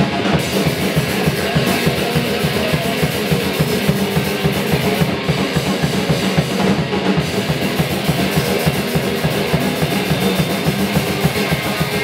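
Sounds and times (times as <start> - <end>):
fast drum-kit beat: 0.0 - 12.0
punk guitar: 0.0 - 12.0.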